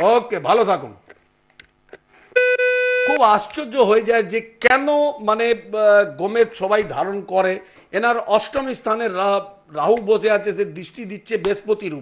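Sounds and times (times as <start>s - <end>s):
steady electronic tone: 2.3s - 3.2s.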